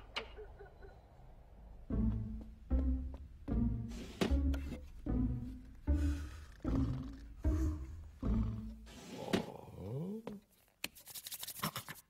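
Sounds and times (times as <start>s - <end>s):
cartoon snoring: 5.9s - 9.9s.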